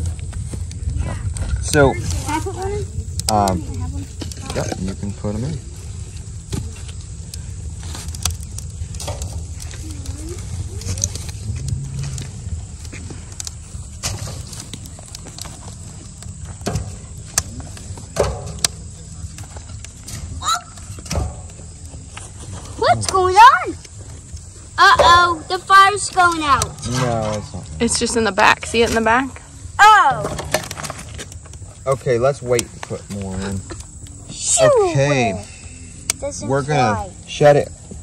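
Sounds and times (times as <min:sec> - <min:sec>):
wood fire crackling: 0:00.0 - 0:38.0
children calling out: 0:20.3 - 0:21.1, 0:24.8 - 0:26.8, 0:29.8 - 0:30.4.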